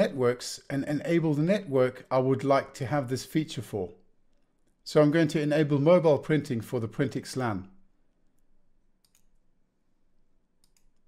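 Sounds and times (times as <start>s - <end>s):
faint computer mouse clicks: 8.4s - 9.4s, 10.6s - 11.0s.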